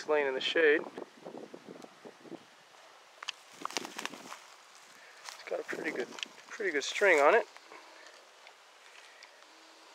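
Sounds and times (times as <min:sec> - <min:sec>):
light wind hiss: 0:00.0 - 0:09.9
dry leaves crackling and rustling: 0:03.2 - 0:09.2.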